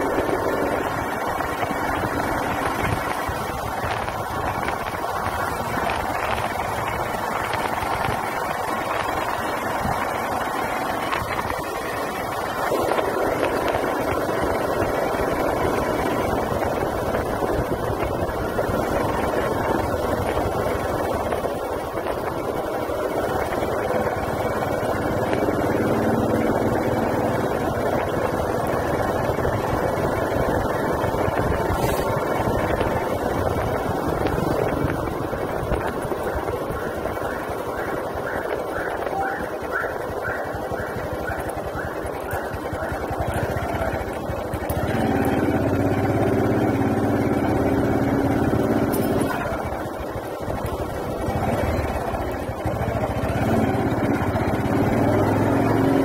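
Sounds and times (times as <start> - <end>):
wind noise: 0.0 - 55.3
motorcycle engine: 0.0 - 56.0.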